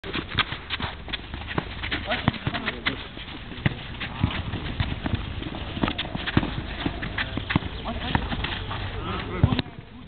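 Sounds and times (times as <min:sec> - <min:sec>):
running footsteps on turf: 0:00.0 - 0:09.8
ball touches: 0:00.1 - 0:09.9.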